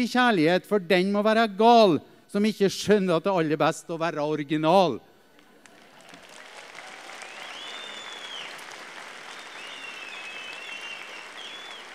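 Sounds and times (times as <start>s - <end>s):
audience applause: 5.6s - 11.9s
high whistles: 7.1s - 11.9s.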